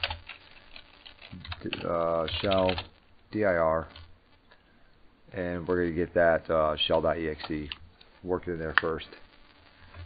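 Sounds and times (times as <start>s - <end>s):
computer keyboard typing: 0.0s - 2.9s.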